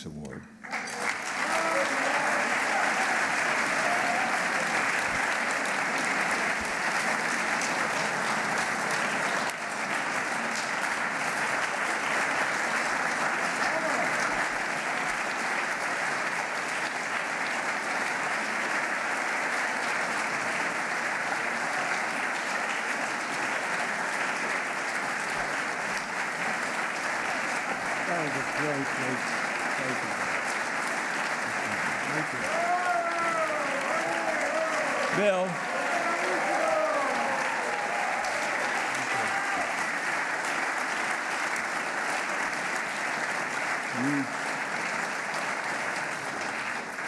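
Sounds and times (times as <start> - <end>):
audience applauding: 0.0 - 47.0.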